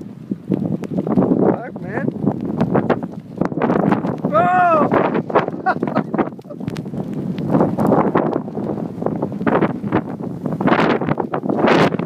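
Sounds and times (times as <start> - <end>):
wind gusting over microphone: 0.0 - 12.0.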